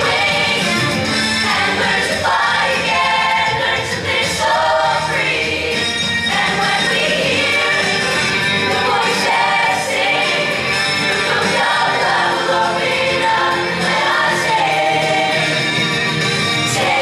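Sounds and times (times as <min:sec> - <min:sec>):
choir singing: 0:00.0 - 0:16.0, 0:16.6 - 0:17.0
musical accompaniment: 0:00.0 - 0:17.0.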